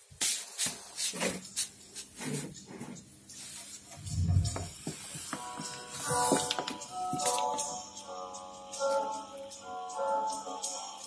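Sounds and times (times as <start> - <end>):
music over loudspeakers: 3.9 - 11.0.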